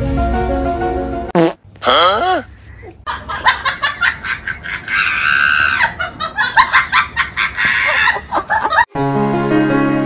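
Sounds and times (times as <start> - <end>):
piano music: 0.0 - 1.4, 8.9 - 10.0.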